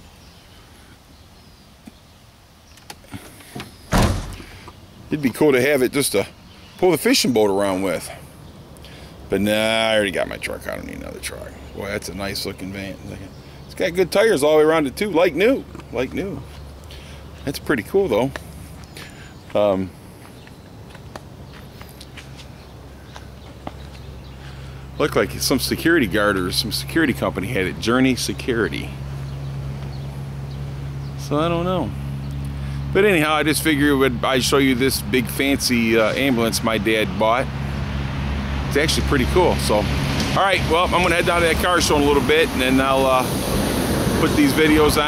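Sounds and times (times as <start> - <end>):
van door slamming: 3.5 - 4.7
light footsteps: 15.7 - 17.5, 18.2 - 24.4.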